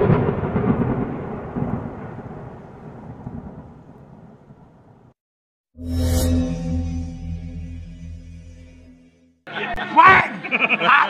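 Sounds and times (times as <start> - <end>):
thunder clap and roll: 0.0 - 5.1.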